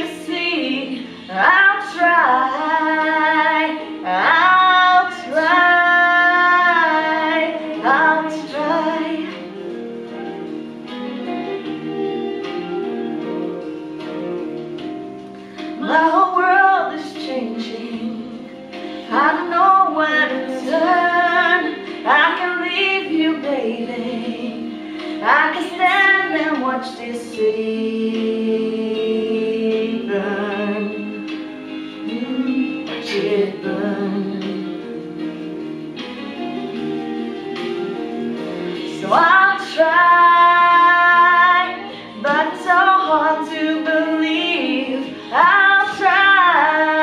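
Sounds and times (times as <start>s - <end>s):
woman singing long held notes: 0.0s - 10.5s, 15.6s - 31.4s, 32.0s - 35.2s, 37.6s - 47.0s
background vocals: 0.0s - 10.7s, 15.7s - 35.6s, 37.0s - 47.0s
instrumental backing track: 0.0s - 47.0s.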